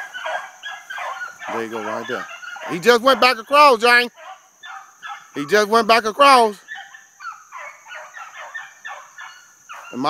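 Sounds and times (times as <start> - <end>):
hounds baying: 0.0 - 10.0.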